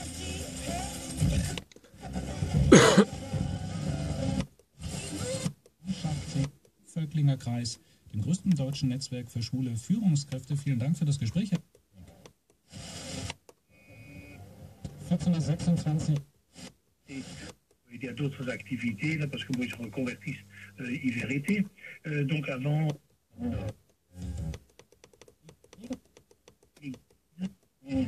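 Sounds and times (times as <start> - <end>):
faint radio station audio: 0.0 - 28.0
radio static hiss: 3.7 - 11.6, 12.7 - 14.4, 15.0 - 23.8
radio click: 14.8 - 23.8.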